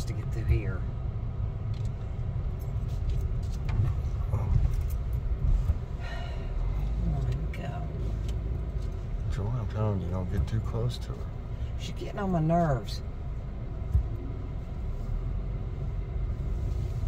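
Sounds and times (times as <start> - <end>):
car engine and road rumble: 0.0 - 17.0.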